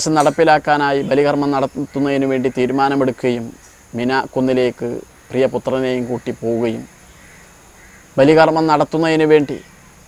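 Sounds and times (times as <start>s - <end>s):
man speaking: 0.0s - 6.9s, 8.2s - 9.7s
faint steady background noise: 0.0s - 10.0s.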